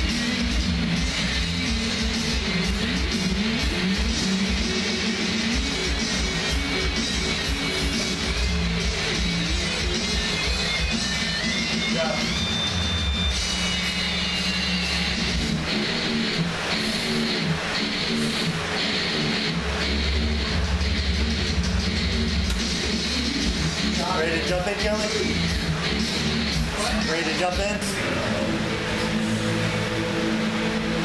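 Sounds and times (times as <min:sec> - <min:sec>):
rock music with guitar: 0:00.0 - 0:31.0.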